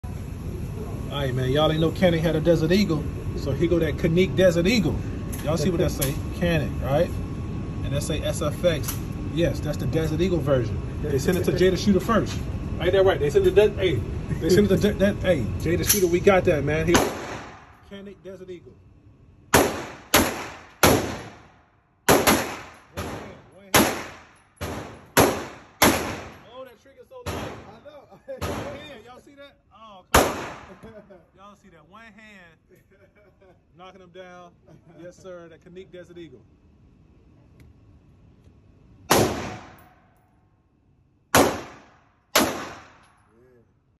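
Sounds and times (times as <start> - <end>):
pistol shots echoing indoors: 19.5 - 21.5, 22.1 - 26.4, 39.1 - 40.1, 41.3 - 43.2.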